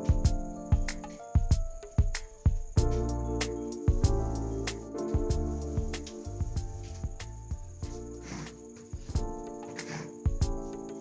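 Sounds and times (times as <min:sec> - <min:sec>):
music with held notes: 0:00.0 - 0:11.0
ticking percussion beat: 0:00.0 - 0:11.0.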